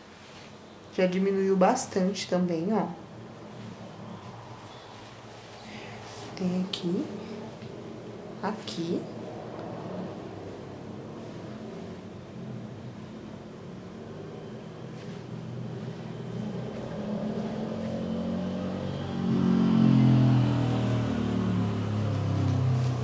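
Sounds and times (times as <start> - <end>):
vehicle engine: 3.3 - 23.0.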